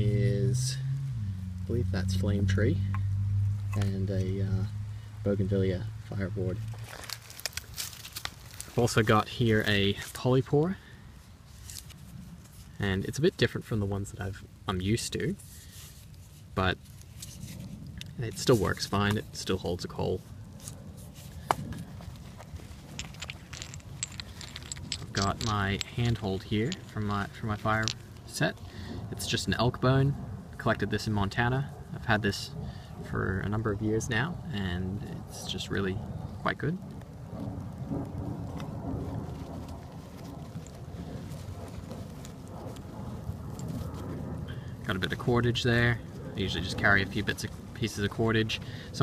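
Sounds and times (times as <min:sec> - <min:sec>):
low rumble: 0:00.0 - 0:10.1, 0:17.6 - 0:49.0.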